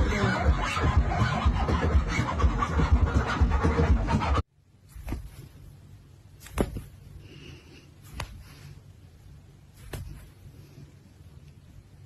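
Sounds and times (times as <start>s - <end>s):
dj party music with heavy bass: 0.0s - 4.4s
dj scratch effects: 0.0s - 4.4s.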